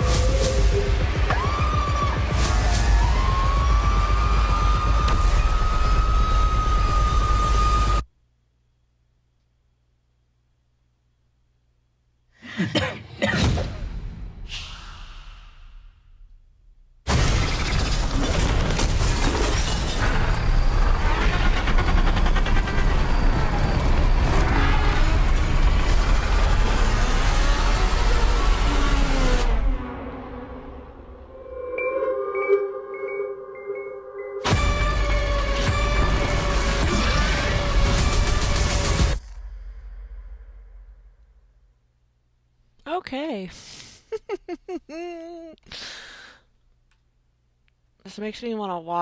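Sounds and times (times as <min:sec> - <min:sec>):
high-pitched ringing tone: 0:31.3 - 0:34.8.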